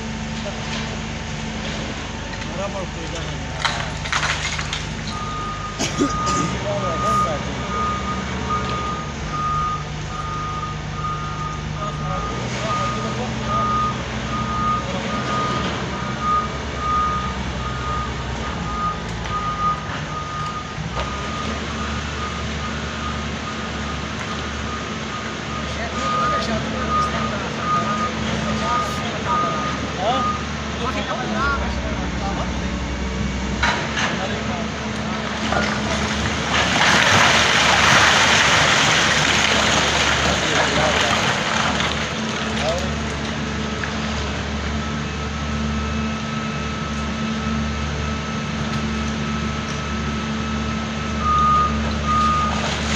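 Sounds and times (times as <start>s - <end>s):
diesel engine running: 0.0s - 52.9s
rock falling: 3.6s - 5.2s, 35.4s - 43.3s
travel alarm beeping: 24.7s - 30.5s.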